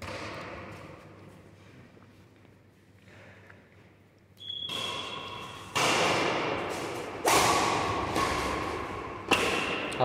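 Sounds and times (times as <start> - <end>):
badminton racquet hitting shuttlecock: 4.4 - 10.0.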